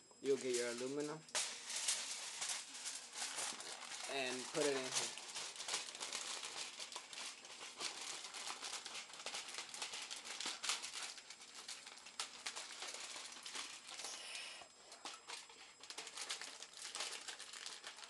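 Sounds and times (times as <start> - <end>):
aluminium foil crinkling: 0.2 - 18.0.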